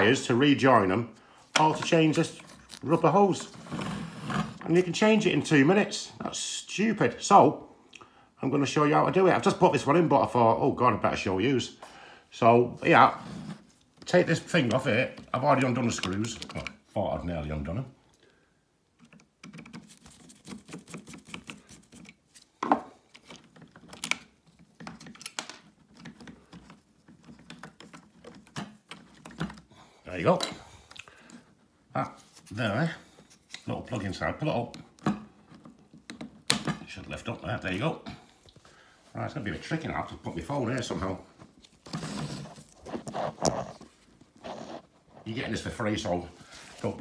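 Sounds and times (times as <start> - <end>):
phone handling rustling: 1.5 - 3.5, 13.7 - 16.9, 19.0 - 32.5, 33.2 - 37.8
plastic parts clicking and rattling: 14.5 - 16.8, 19.0 - 22.3, 23.0 - 31.4.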